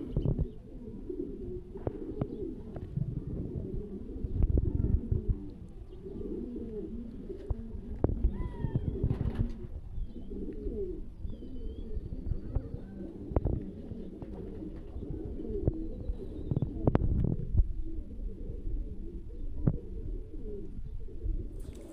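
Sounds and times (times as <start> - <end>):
pigeons cooing: 0.0 - 21.9
small birds chirping: 5.5 - 7.4, 9.8 - 16.8, 20.8 - 21.9.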